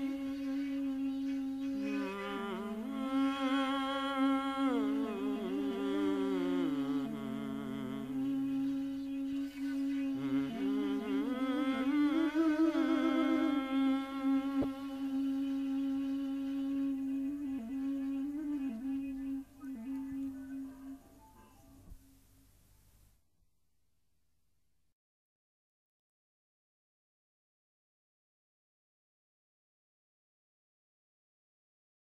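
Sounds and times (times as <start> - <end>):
low voice humming: 0.0 - 21.2.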